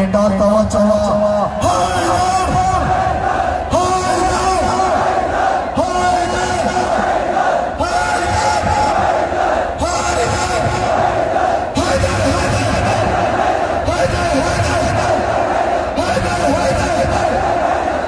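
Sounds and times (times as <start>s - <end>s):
crowd chanting in unison: 1.4s - 18.0s.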